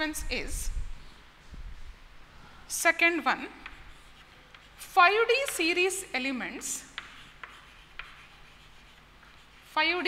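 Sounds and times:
chalk scratching on chalkboard: 3.3s - 6.0s, 6.6s - 10.0s
chalk tapping on board: 3.5s - 6.0s, 6.6s - 9.8s.

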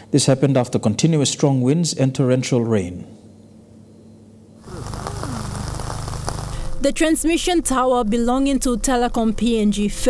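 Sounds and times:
steady hiss: 4.6s - 7.4s.

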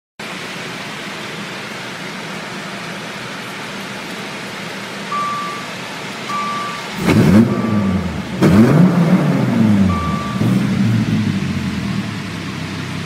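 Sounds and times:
dashboard electronic chime: 5.1s - 10.8s.

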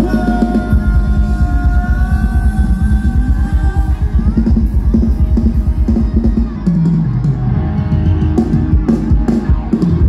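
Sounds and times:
fast drum beat: 0.0s - 10.0s.

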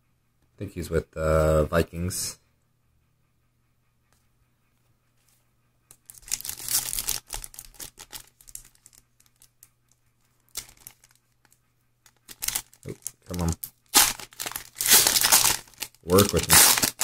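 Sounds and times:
foil wrapper crinkling and tearing: 6.1s - 9.5s, 10.5s - 11.2s, 12.1s - 17.0s.

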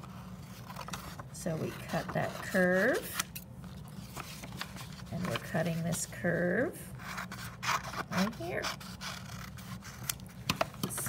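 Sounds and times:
scissors cutting paper: 7.0s - 11.0s.

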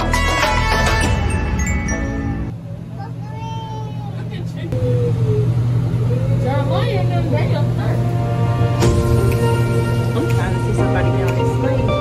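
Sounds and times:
steady low hum: 2.4s - 12.0s.

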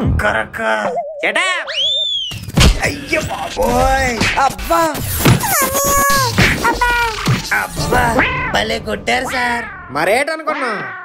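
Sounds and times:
rising and falling whistle: 1.7s - 2.5s.

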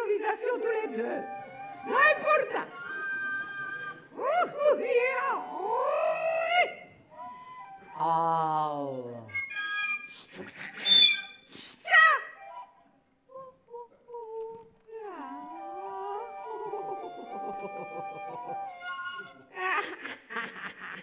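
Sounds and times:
small wooden flute: 1.0s - 14.4s, 15.0s - 19.6s
swooping vocal cries: 15.1s - 18.2s.

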